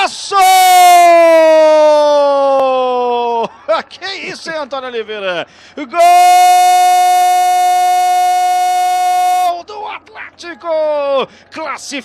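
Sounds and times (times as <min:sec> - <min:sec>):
commentator shouting goal: 0:05.9 - 0:12.0.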